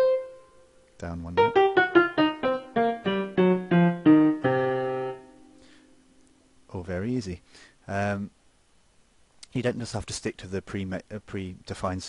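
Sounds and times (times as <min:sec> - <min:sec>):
synthesized piano blues scale: 0:00.0 - 0:00.6, 0:01.3 - 0:05.5.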